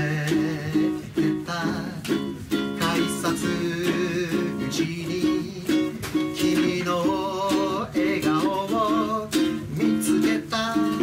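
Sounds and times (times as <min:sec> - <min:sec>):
man singing: 0:00.0 - 0:11.0
ukulele strummed: 0:00.0 - 0:11.0.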